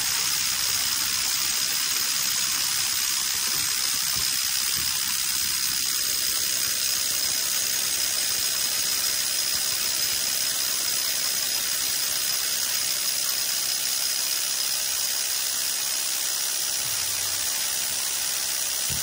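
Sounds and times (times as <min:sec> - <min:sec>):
power drill boring into concrete: 0:00.0 - 0:19.0.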